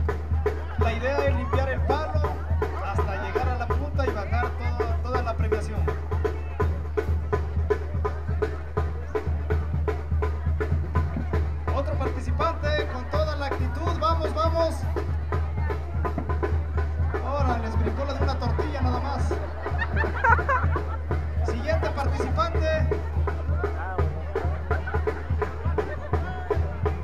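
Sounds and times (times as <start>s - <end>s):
crowd voices: 0.0s - 27.0s
steady drum beat: 0.0s - 27.0s.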